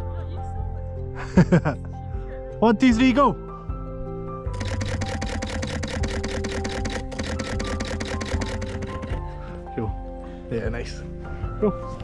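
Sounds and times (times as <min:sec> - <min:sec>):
background music: 0:00.0 - 0:12.0
camera shutter rapid burst: 0:04.5 - 0:09.0.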